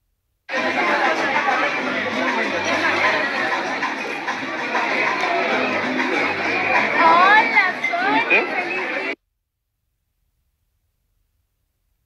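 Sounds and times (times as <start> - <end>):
chatter of diners: 0.5 - 9.2.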